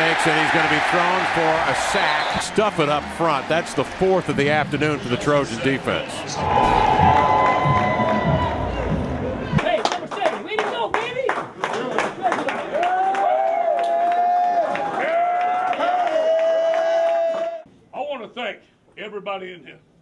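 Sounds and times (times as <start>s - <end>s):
low rumble of stadium noise: 6.3s - 9.7s
people shouting: 6.4s - 9.1s
hand claps: 9.6s - 14.9s.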